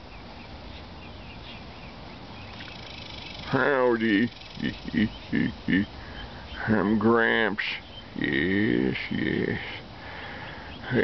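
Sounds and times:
outdoor hiss and rumble: 0.0 - 11.0.

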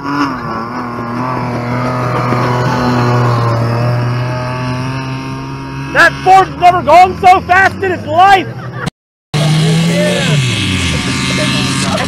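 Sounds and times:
car engine running under load: 0.0 - 12.0.

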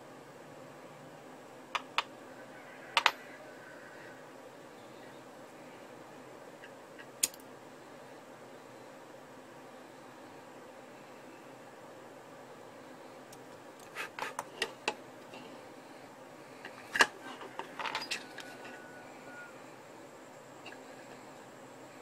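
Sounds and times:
steady low background hum: 0.0 - 22.0.

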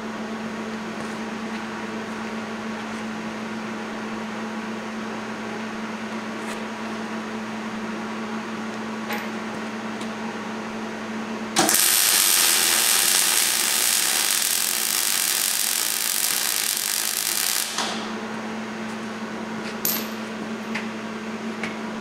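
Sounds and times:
steady low hum: 0.0 - 22.0
welder arc crackling: 11.6 - 18.2.

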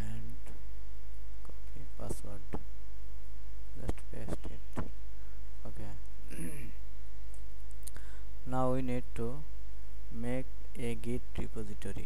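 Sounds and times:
electrical mains hum: 0.0 - 12.0
person murmuring: 5.7 - 6.8.

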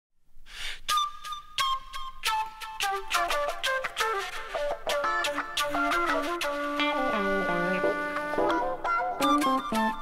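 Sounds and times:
flute-led intro music: 0.9 - 10.0.

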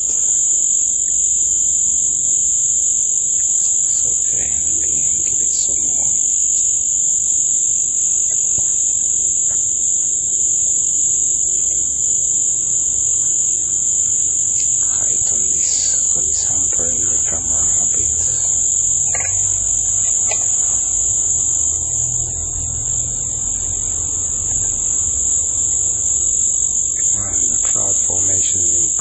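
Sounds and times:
high-pitched insect chorus: 0.0 - 29.0
lower insect trilling: 0.0 - 29.0
low background rumble: 3.2 - 29.0.

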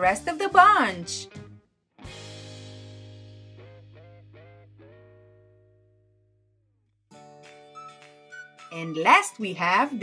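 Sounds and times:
guitar chord ringing: 2.7 - 6.4
sliding guitar notes: 3.6 - 5.9.

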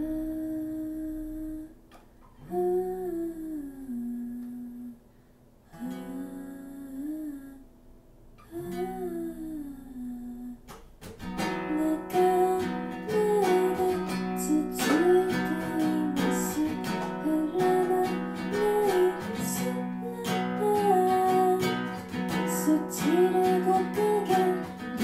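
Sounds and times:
woman humming: 0.0 - 5.0, 5.7 - 7.7, 8.4 - 10.7, 11.6 - 25.0
acoustic guitar: 0.0 - 25.0.

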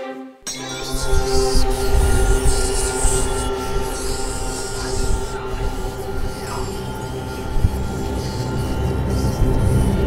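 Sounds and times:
high squealing tones: 0.5 - 10.0.

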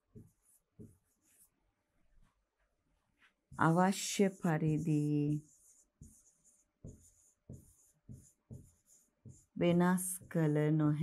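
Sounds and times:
pen scratching on a board: 0.1 - 1.5, 3.6 - 9.6.

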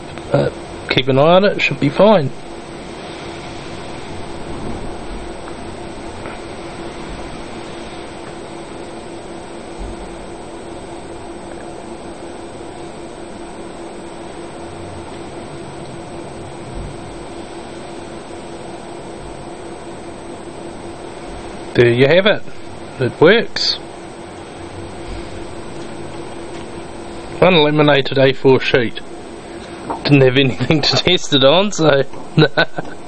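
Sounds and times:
laminator motor humming: 0.0 - 33.0.

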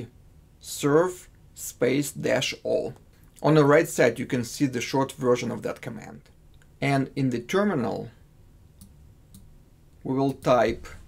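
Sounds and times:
computer mouse clicks: 8.8 - 9.5.

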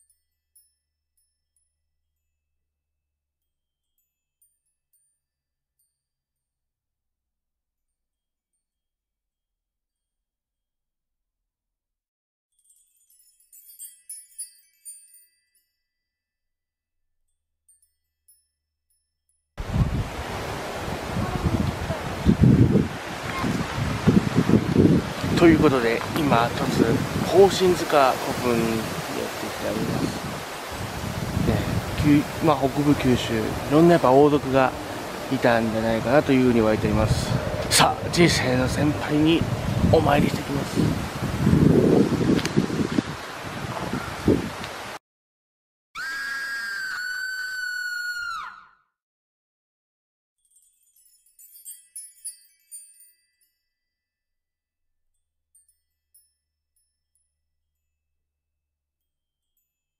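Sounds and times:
wind buffeting microphone: 19.6 - 44.9.

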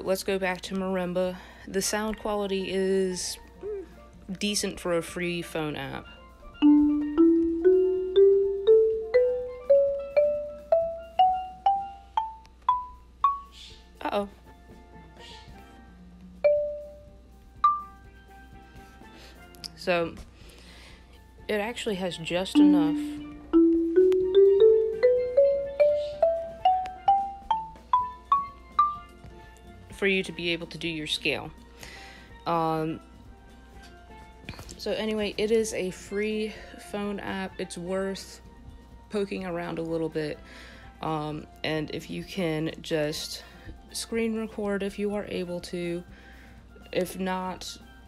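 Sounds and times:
marimba ascending scale: 6.6 - 13.5, 16.4 - 18.0, 22.5 - 29.0.

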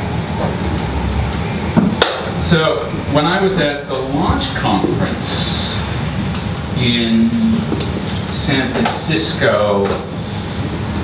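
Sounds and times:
low bass rumble: 2.4 - 8.6.

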